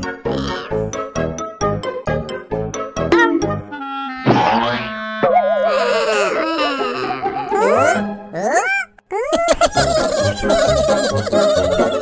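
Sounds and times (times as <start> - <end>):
music: 0.0 - 5.2, 6.3 - 8.6, 9.6 - 12.0.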